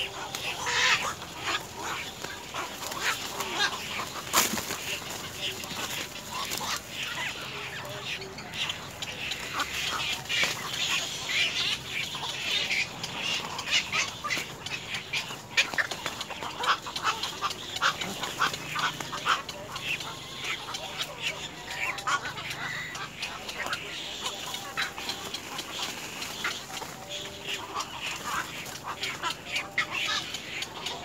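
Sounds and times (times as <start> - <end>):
heron chick calls and clicks: 0.0 - 31.0.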